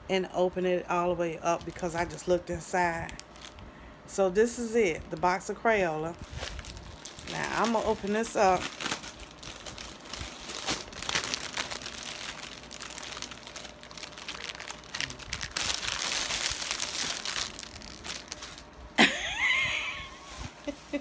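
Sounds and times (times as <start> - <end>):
plastic wrapping crinkling: 1.4 - 3.6, 6.2 - 18.8.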